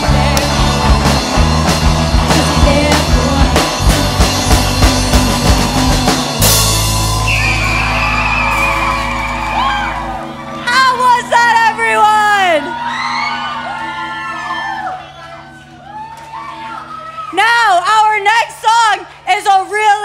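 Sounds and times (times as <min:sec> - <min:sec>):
rock music with drum beat: 0:00.0 - 0:13.8.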